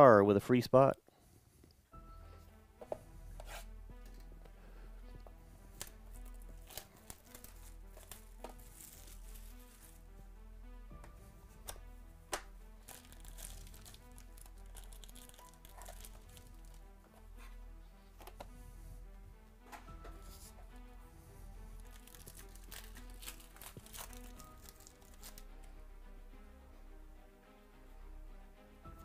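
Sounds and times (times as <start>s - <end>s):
background music with steady beat: 0.0s - 29.0s
plastic shrink wrap tearing: 5.8s - 10.0s, 12.8s - 16.8s, 21.7s - 25.4s.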